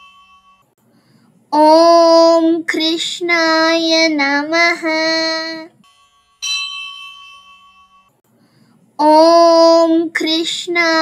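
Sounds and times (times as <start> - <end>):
bell ringing: 0.0 - 0.7, 5.8 - 8.2.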